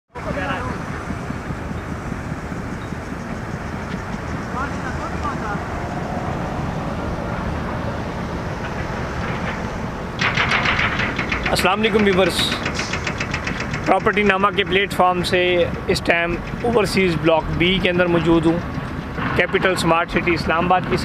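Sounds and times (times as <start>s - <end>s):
wind rumbling on microphone: 0.2s - 21.0s.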